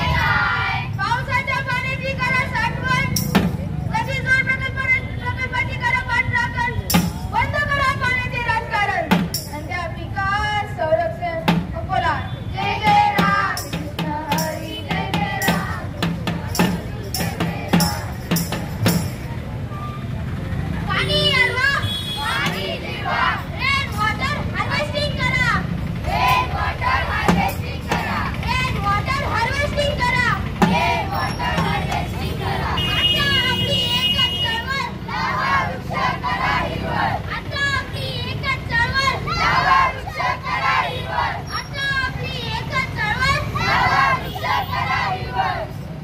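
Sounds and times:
low hum of street noise: 0.0 - 46.0
young voices shouting high calls: 37.2 - 44.7.

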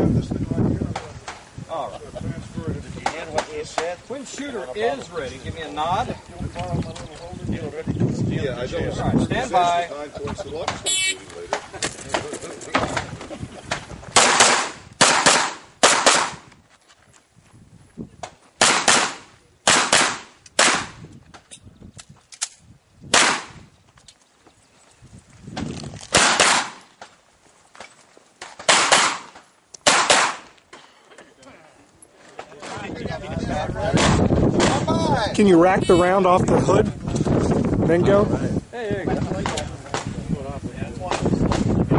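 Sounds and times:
handgun shots: 14.2 - 16.4, 18.6 - 21.0, 23.1 - 23.6, 26.1 - 26.8, 28.6 - 30.5.

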